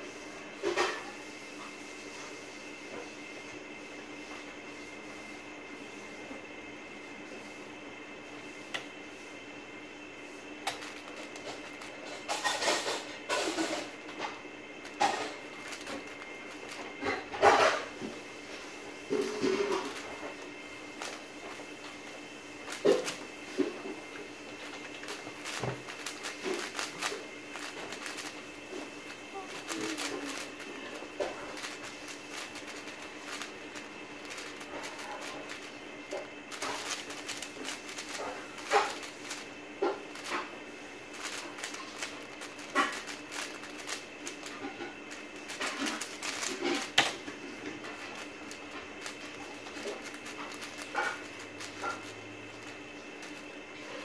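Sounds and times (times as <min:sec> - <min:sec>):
speed cube rattling clicks: 0:24.6 - 0:28.4, 0:29.5 - 0:30.7, 0:31.5 - 0:35.7, 0:36.5 - 0:39.5, 0:41.2 - 0:44.5, 0:45.5 - 0:47.1, 0:48.2 - 0:52.0.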